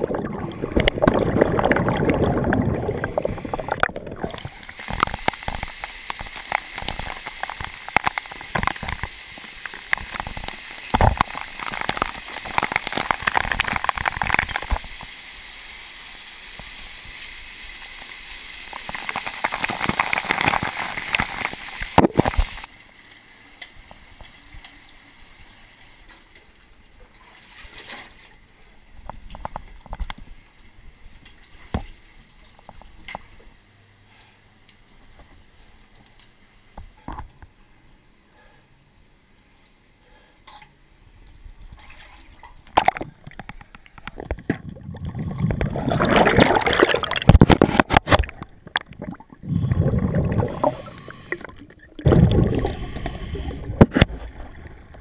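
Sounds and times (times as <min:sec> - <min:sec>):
water splashing and sloshing: 0:00.0 - 0:33.6, 0:41.2 - 0:55.0.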